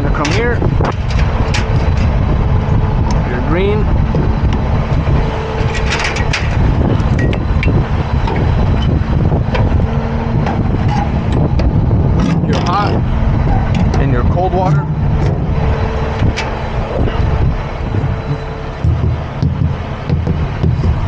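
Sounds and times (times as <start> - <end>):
diesel truck engine idling: 0.0 - 21.0
metallic clicks and clanks: 0.1 - 2.2, 5.6 - 9.8, 16.1 - 16.7.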